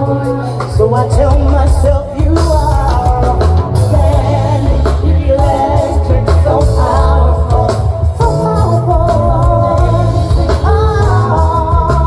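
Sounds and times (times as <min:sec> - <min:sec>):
keyboards: 0:00.0 - 0:12.0
woman singing into a microphone: 0:03.8 - 0:12.0.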